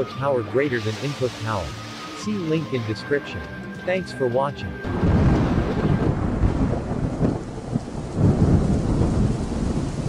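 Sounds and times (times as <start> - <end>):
steady rain: 0.0 - 10.0
rolling thunder: 4.8 - 10.0.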